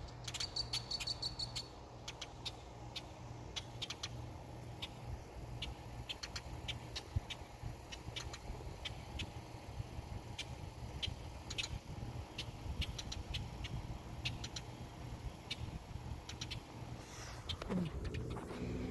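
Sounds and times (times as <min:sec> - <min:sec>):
high-pitched ticks or chirps: 0:00.2 - 0:04.2, 0:10.3 - 0:14.8, 0:15.4 - 0:16.7
steady low rumble: 0:01.7 - 0:18.9.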